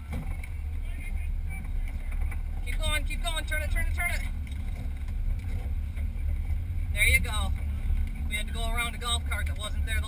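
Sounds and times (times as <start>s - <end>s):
race car rumble in cockpit: 0.0s - 10.0s.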